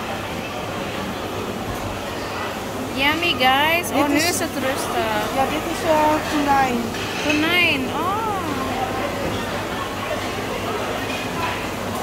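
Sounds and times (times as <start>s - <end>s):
restaurant background chatter: 0.0s - 12.0s.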